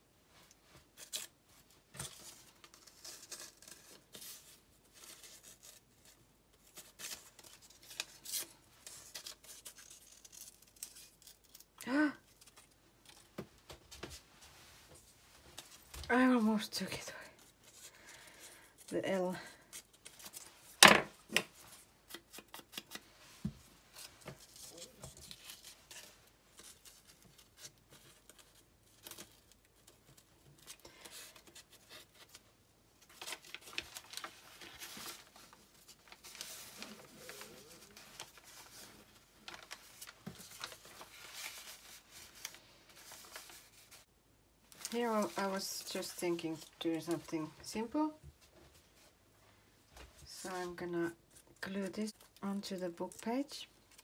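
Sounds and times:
paper rustling and crinkling: 0.4 - 44.1, 44.7 - 49.2.

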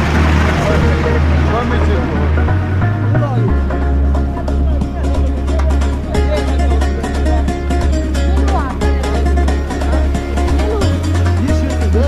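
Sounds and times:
deep bass drone: 0.0 - 12.0.

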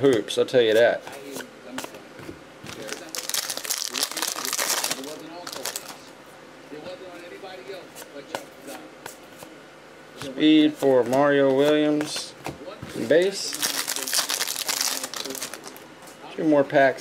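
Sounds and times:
wrapper crinkling as torn open: 2.8 - 6.0, 13.4 - 15.8.

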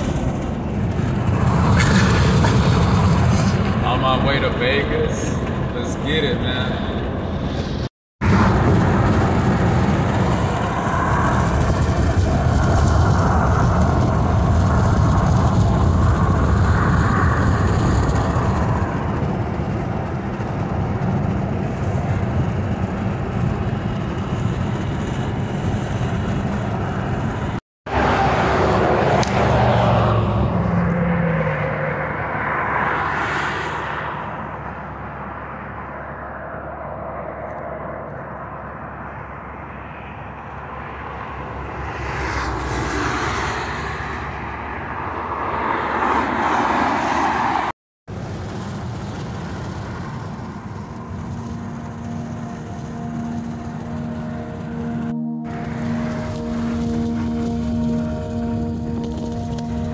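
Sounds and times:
rush of noise: 0.0 - 59.9
tyre and road noise in car: 0.0 - 59.9.

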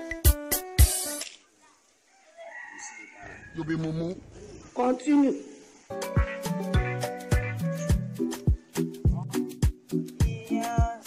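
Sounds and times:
rooster crowing: 2.0 - 4.6.

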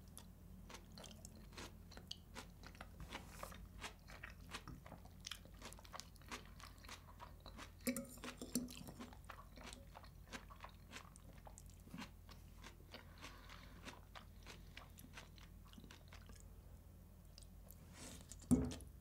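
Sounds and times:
close chewing with wet crunches: 0.0 - 16.5.

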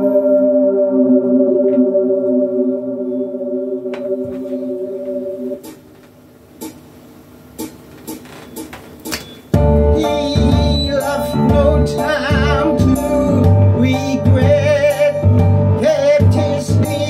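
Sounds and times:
sustained drone of steady tones: 0.0 - 6.1.

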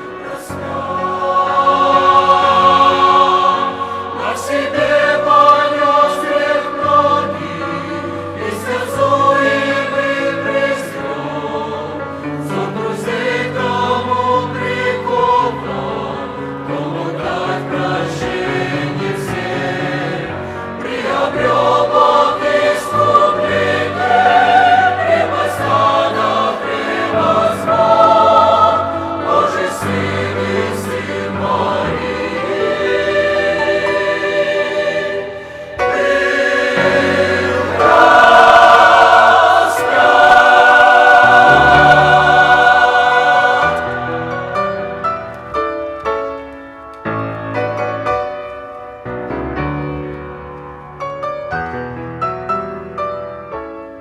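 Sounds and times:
choir singing a hymn: 0.0 - 46.4.

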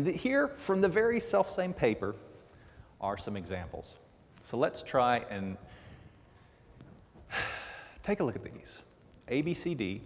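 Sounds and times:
man breathing: 2.5 - 3.0, 5.6 - 8.0.

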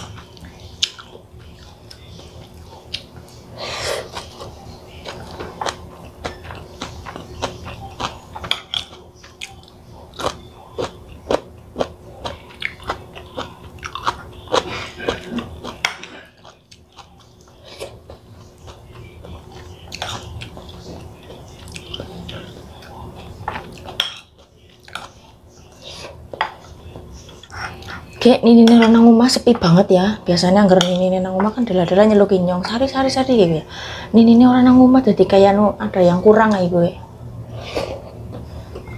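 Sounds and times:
person chewing food: 0.0 - 28.2.

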